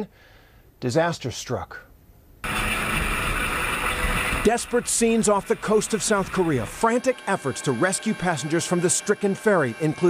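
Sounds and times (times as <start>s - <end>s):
boat engine: 2.4s - 10.0s.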